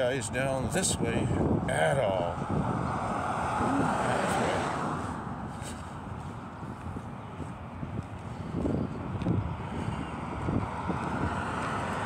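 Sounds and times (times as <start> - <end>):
footsteps on sidewalk: 0.0 - 12.0
road traffic: 0.0 - 12.0
wind on microphone: 0.0 - 12.0.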